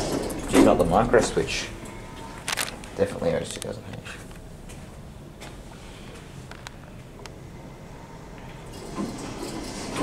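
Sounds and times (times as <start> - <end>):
elevator doors sliding shut: 0.0 - 2.1, 8.6 - 10.0.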